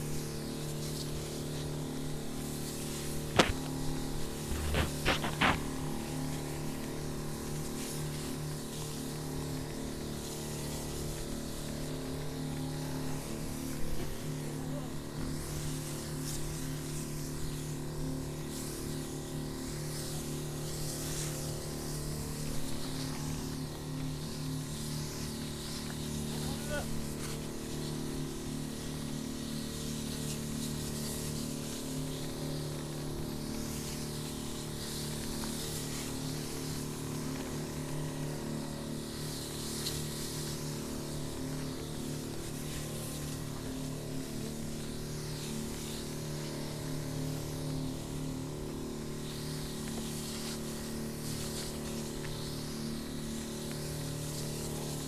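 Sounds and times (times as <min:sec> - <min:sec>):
motorized sprayer humming: 0:00.0 - 0:55.0
spray hissing: 0:00.0 - 0:55.0.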